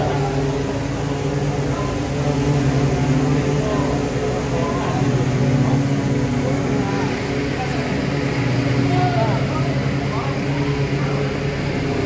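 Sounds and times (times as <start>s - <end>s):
factory machinery humming: 0.0s - 12.0s
faint voices: 0.0s - 12.0s.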